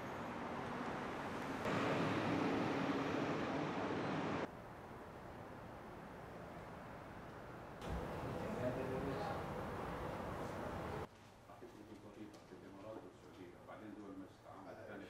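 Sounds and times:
cars passing on city street: 0.0 - 11.1
steady street ambience: 0.0 - 11.1.

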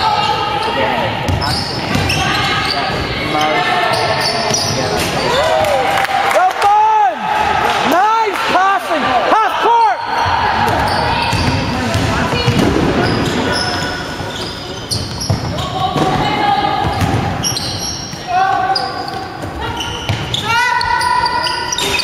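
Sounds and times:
sneakers squeaking on floor: 0.0 - 5.4, 10.0 - 22.0
basketball bouncing on wooden court: 10.6 - 13.5, 14.4 - 20.4.

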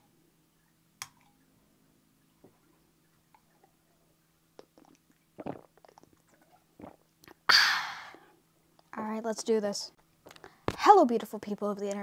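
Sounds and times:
sharp exhale: 7.5 - 8.3.

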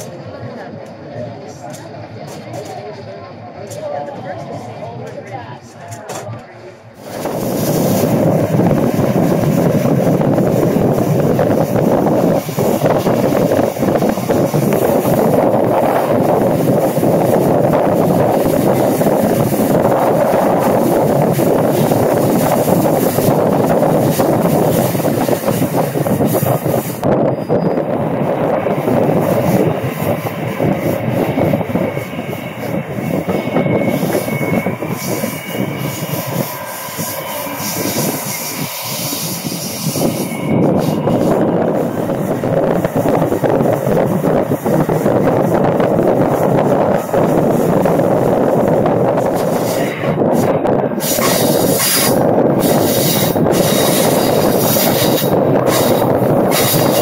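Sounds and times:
train wheels rushing on rails: 0.0 - 57.0
train wheels squealing: 27.2 - 28.0, 31.8 - 41.3.

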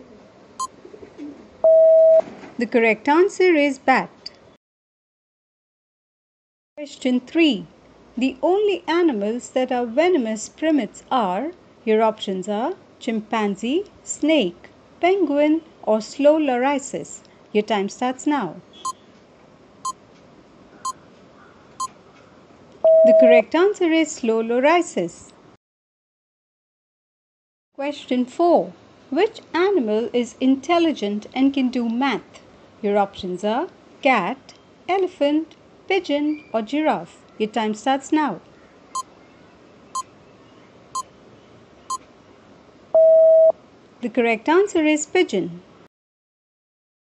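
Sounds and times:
loud steady beep: 22.8 - 23.4, 43.0 - 43.5
countdown timer beeps: 22.9 - 23.4.

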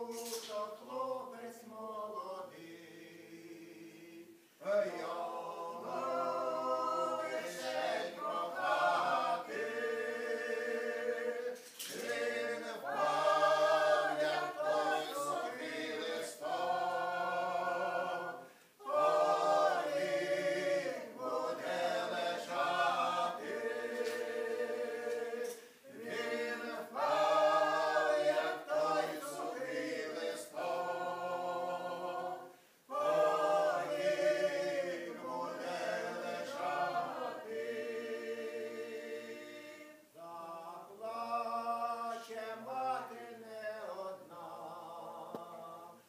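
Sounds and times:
group singing a cappella: 0.0 - 46.0.

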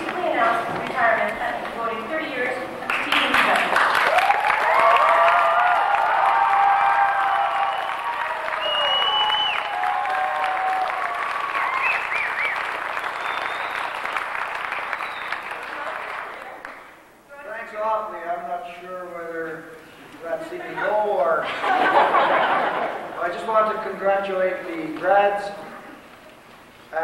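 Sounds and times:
audience applauding and cheering: 2.8 - 16.9
short high whistle: 8.6 - 9.6.

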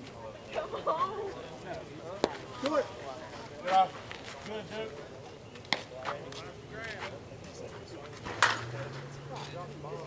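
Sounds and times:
softball bat hitting ball: 8.3 - 8.7.

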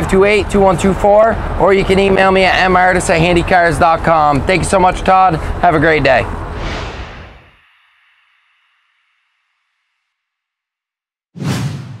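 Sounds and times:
whoosh: 6.4 - 10.0, 11.4 - 12.0.

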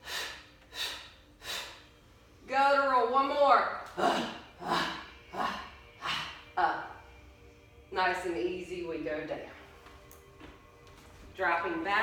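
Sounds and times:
woman breathing forcefully: 0.0 - 2.2, 4.0 - 6.6.

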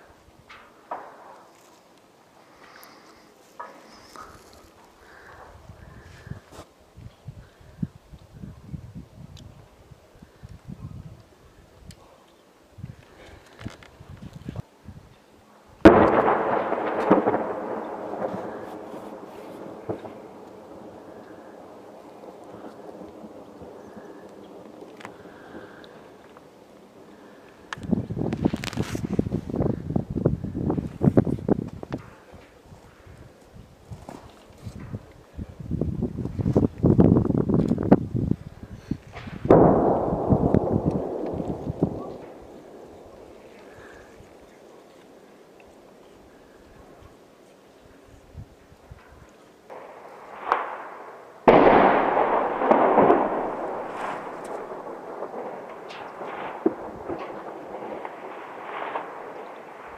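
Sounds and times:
heavy blasts with rolling echo: 0.7 - 1.6, 15.8 - 31.2, 38.3 - 47.0, 49.7 - 59.9
dense rapid crackling: 15.9 - 29.8, 38.9 - 47.0, 49.7 - 59.9.

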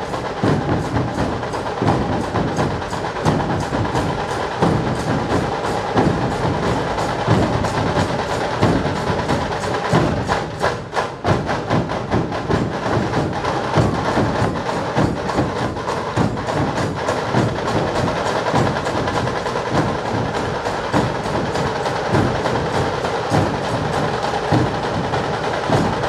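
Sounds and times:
drums beaten with sticks: 0.0 - 26.0.

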